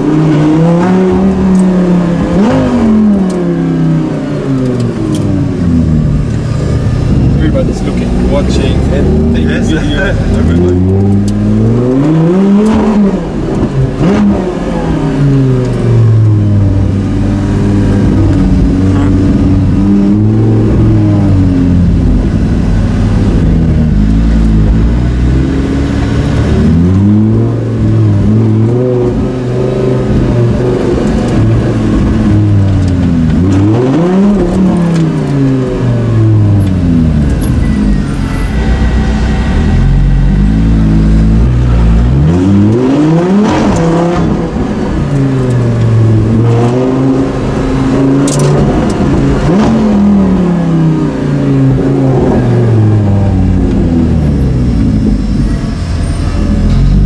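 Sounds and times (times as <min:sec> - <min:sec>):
race car engine revving: 0:00.0 - 0:57.0.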